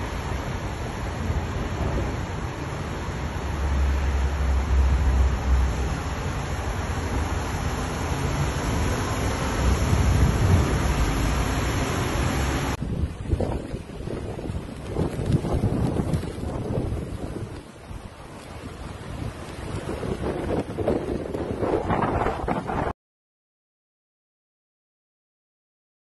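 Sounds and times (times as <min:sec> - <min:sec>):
storm waves crashing: 0:00.0 - 0:22.9
surf breaking against seawall: 0:00.0 - 0:22.9
wind buffeting microphone: 0:00.0 - 0:22.9.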